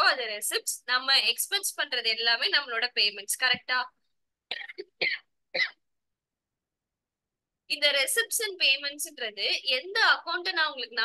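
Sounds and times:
person coughing: 0:04.5 - 0:05.8.

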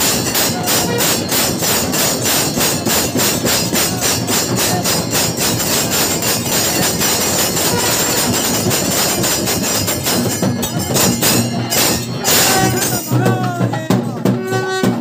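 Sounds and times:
bells and cymbals clanging: 0:00.0 - 0:15.0.

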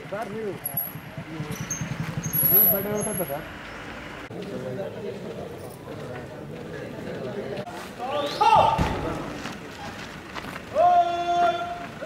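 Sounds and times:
vehicle engine running: 0:00.0 - 0:04.3
people talking: 0:02.4 - 0:03.5.

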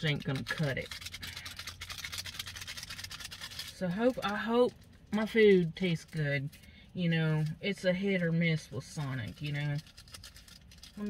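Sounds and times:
paper packet of granules rattling: 0:00.0 - 0:06.2, 0:09.0 - 0:11.0.

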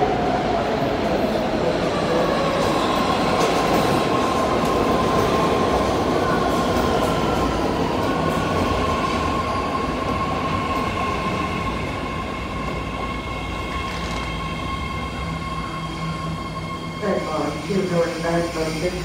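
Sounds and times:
train high whine: 0:00.0 - 0:19.0.

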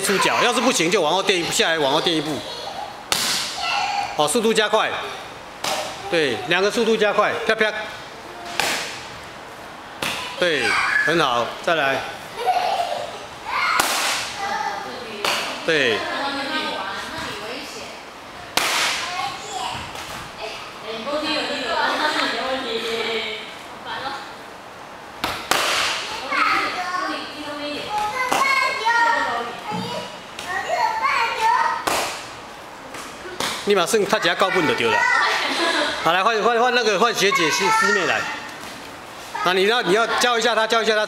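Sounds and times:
children's voices: 0:00.0 - 0:04.2, 0:12.3 - 0:15.1, 0:18.4 - 0:20.9, 0:26.0 - 0:31.9, 0:34.1 - 0:36.0, 0:37.1 - 0:38.6.

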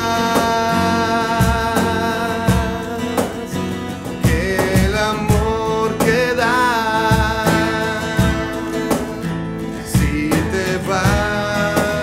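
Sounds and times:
low drum beat: 0:00.0 - 0:03.5, 0:04.1 - 0:12.0
electric bass: 0:00.0 - 0:12.0
person singing: 0:00.0 - 0:12.0
strummed acoustic guitars: 0:00.0 - 0:12.0.

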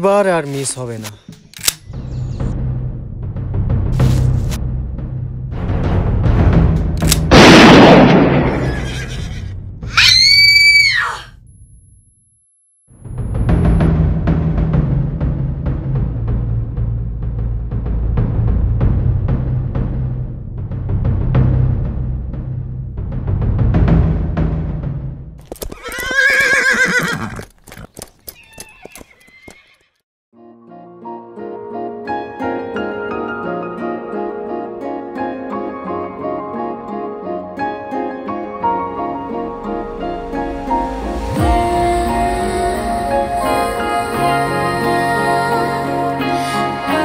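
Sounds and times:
gunshot echo: 0:07.2 - 0:08.8
horse whinnying: 0:08.6 - 0:11.3, 0:25.6 - 0:30.0
woman screaming: 0:09.9 - 0:11.3
hoof clops: 0:25.4 - 0:30.0.

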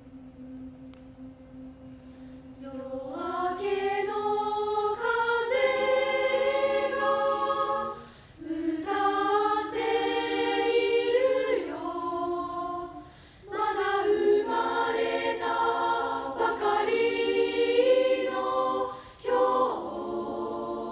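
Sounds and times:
girls' choir singing: 0:02.5 - 0:20.9.

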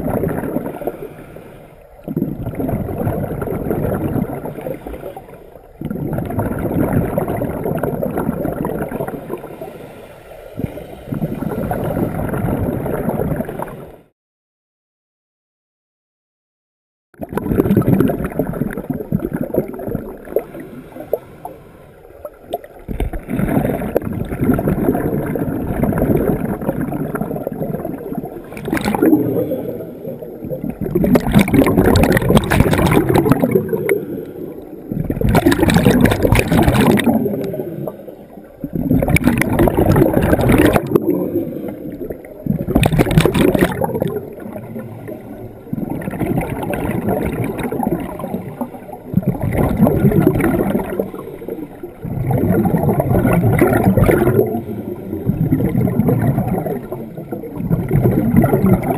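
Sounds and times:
scuba exhaust bubbles gurgling: 0:00.0 - 0:14.1, 0:17.2 - 0:58.9
wash of water: 0:22.5 - 0:58.9.

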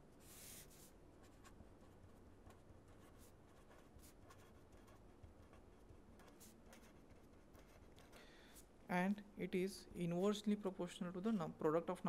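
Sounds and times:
faint low hum: 0:00.0 - 0:12.0
pen scratching on paper: 0:00.2 - 0:08.2.

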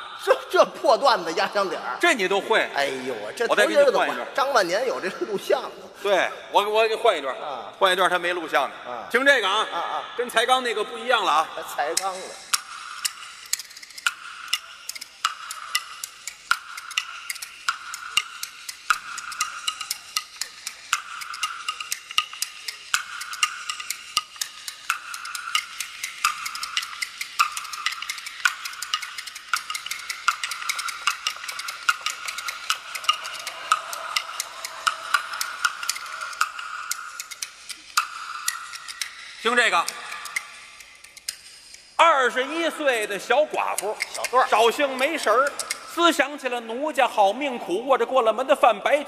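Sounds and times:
bamboo clappers clacking: 0:11.4 - 0:49.0.

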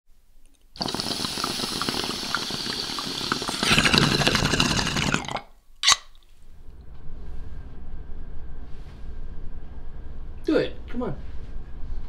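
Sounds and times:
water bubbling and gurgling: 0:00.8 - 0:05.4.

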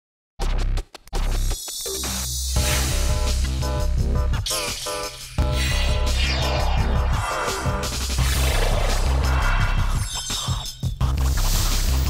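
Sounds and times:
theme music: 0:02.6 - 0:11.0.

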